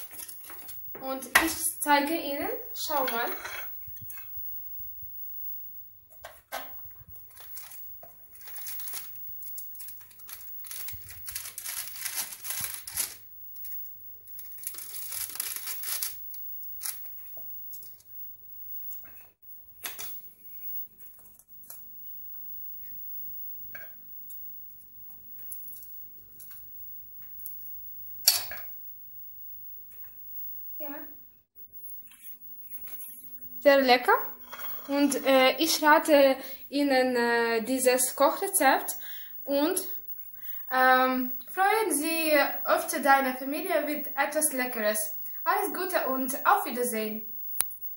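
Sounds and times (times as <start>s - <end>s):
baking paper rustling: 0.0s - 1.7s, 6.3s - 18.0s.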